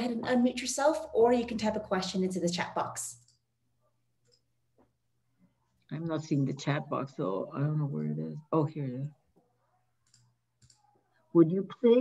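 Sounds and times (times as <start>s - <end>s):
person speaking: 5.8s - 9.5s.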